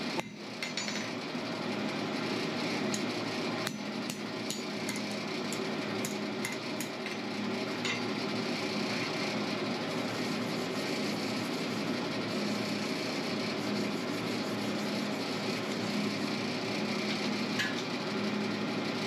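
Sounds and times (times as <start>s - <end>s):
steady hum: 0.0s - 19.0s.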